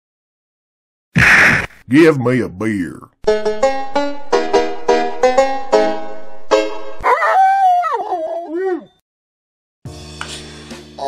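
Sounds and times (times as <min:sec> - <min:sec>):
dog howling: 0:07.0 - 0:09.0.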